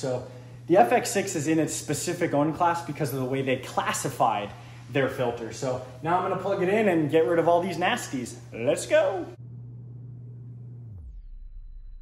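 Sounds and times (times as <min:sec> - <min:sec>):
aquarium equipment hum: 0:00.0 - 0:11.0.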